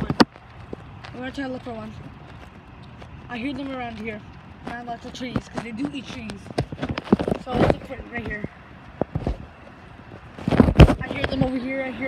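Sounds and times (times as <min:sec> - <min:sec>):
rumbling bumps and wind: 0:00.0 - 0:12.0.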